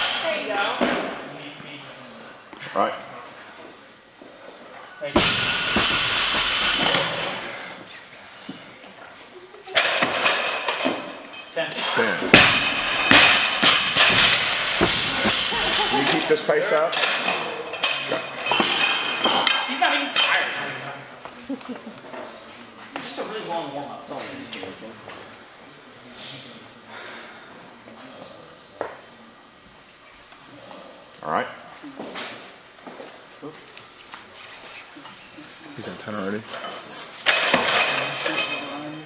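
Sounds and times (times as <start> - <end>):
metal clanks and knocks: 12.2 - 16.2.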